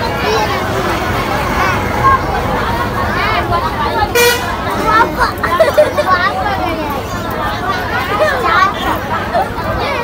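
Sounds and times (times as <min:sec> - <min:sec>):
murmur of crowd chatter: 0:00.0 - 0:10.0
people talking: 0:00.0 - 0:10.0.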